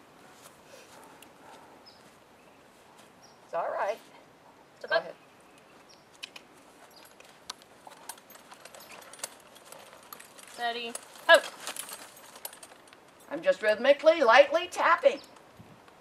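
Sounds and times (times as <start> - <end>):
horse hooves stepping: 5.7 - 13.7.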